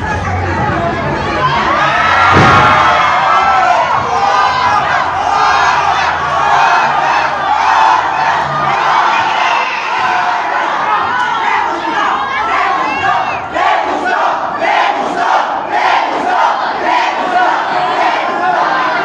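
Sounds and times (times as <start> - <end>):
crowd shouting and cheering: 0.0 - 19.0.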